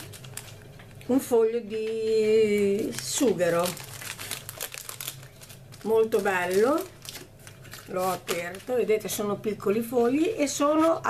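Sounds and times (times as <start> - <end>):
plastic wrapping crinkling: 0.0 - 1.0, 1.7 - 9.3.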